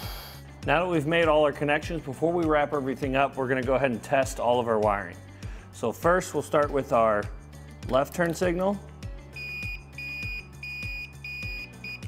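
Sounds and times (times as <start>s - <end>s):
circuit tester beeping: 9.4s - 12.0s.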